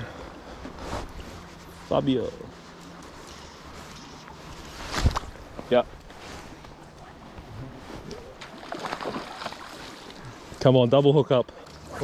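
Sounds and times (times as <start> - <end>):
flowing river water: 6.1 - 12.0.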